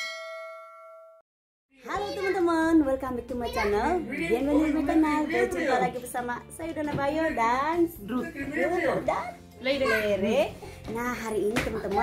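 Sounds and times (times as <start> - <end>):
notification bell ding: 0.0 - 1.2.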